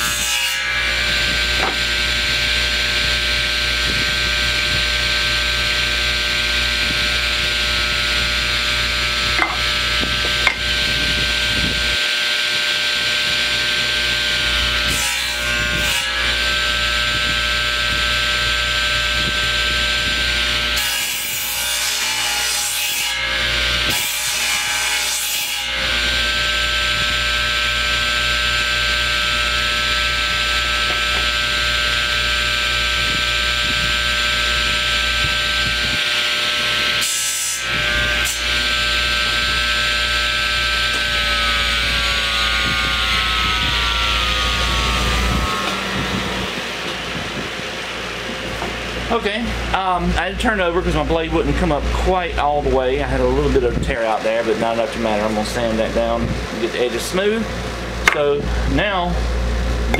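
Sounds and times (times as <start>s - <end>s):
saw blade cutting wood: 0.0s - 47.4s, 58.1s - 58.4s
table saw running: 0.0s - 51.9s, 57.5s - 59.9s.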